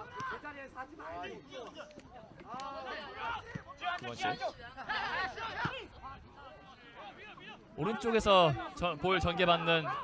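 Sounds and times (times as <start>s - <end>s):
voices shouting across a field: 0.0s - 10.0s.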